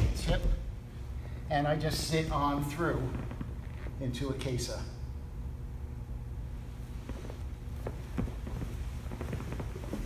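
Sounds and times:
low hum: 0:00.0 - 0:10.0
cloth rustling: 0:06.8 - 0:10.0
hands and knees patting on mat: 0:07.0 - 0:10.0.

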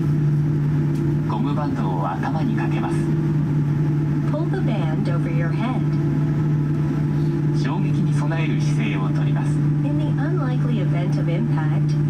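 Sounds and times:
airliner cabin hum: 0:00.0 - 0:12.0
voice from safety video: 0:04.3 - 0:06.0, 0:07.6 - 0:12.0.

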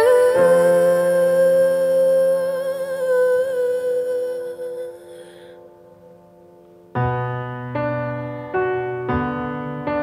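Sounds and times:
woman singing long note: 0:00.0 - 0:05.3.

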